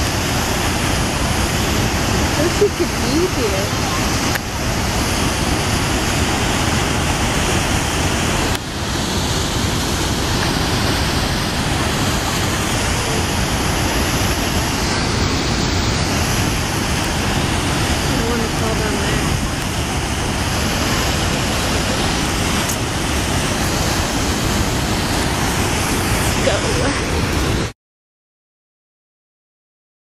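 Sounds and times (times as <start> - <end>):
waterfall rushing: 0.0 - 27.7.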